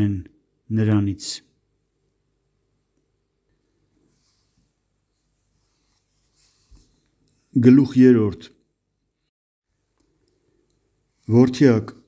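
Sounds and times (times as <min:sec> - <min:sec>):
man reading aloud: 0:00.0 - 0:01.6, 0:07.5 - 0:08.6, 0:11.2 - 0:12.0.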